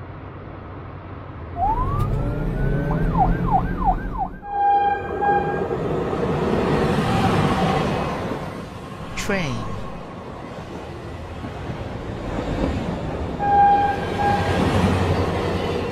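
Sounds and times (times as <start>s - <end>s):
cartoon police siren: 1.5s - 5.7s.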